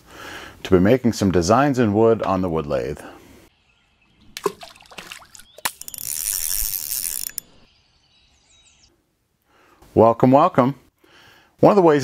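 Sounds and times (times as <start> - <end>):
sharp clicks: 5.6 - 7.6.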